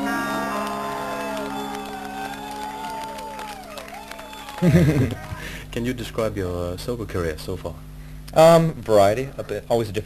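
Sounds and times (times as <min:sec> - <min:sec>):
electric guitar chord ringing: 0:00.0 - 0:03.8
audience cheering and clapping: 0:00.0 - 0:05.6
audience whistling: 0:00.0 - 0:05.6.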